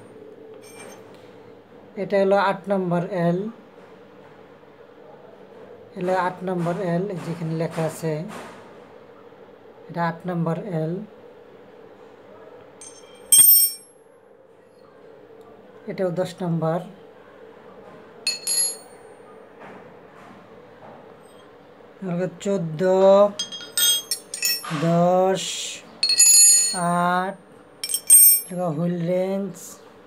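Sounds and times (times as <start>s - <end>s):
metal wrench clinking on tile floor: 0.6s - 1.0s, 12.8s - 13.9s, 18.3s - 18.9s, 23.4s - 24.8s, 26.0s - 27.0s, 27.8s - 28.5s.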